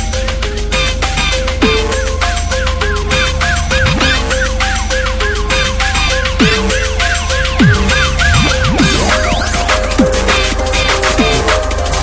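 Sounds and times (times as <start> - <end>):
fast kick and bass beat: 0.0 - 12.0
deep downward-sliding notes: 1.6 - 12.0
repeating high-tone riff: 1.6 - 12.0.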